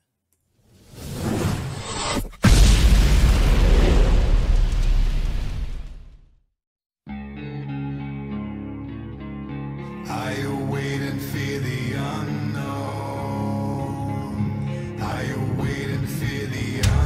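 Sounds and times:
rising whoosh: 0.8 - 6.0
deep boom: 2.4 - 6.3
music with held notes: 7.1 - 10.4.

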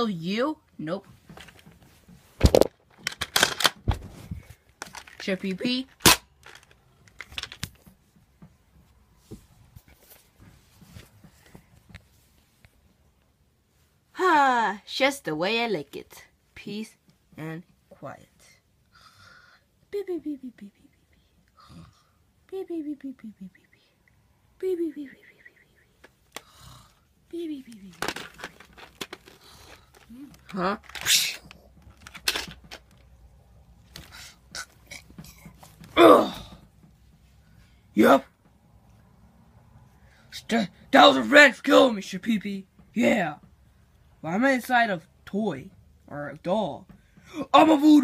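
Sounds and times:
handling clicks and knocks: 1.2 - 4.0, 4.8 - 5.3, 5.9 - 8.6, 27.9 - 33.3
plastic toys rustling: 1.2 - 7.9, 27.7 - 36.0.

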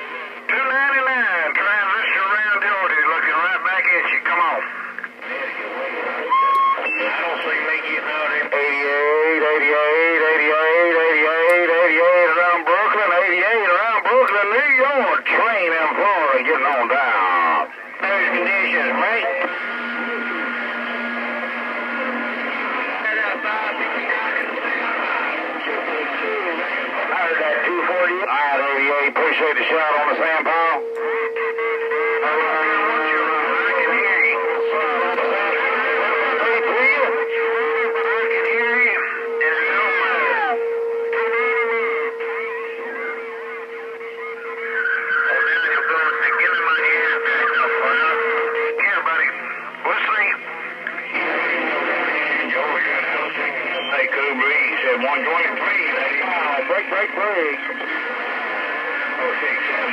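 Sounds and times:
garbled radio voices: 0.0 - 59.9
radio interference: 0.0 - 59.9.

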